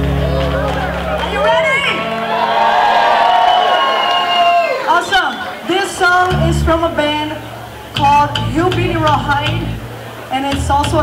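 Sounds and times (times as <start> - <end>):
woman talking into a microphone: 4.9 - 11.0.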